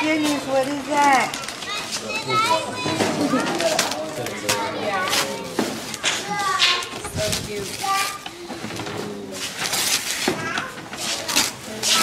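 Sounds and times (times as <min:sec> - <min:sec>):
adults and children chattering: 0:00.0 - 0:12.0
gift wrap rustling: 0:00.0 - 0:12.0.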